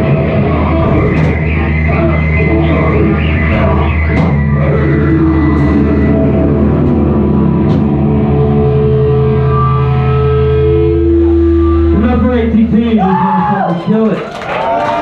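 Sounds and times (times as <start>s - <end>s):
live rock band sustained chords: 0.0s - 13.0s.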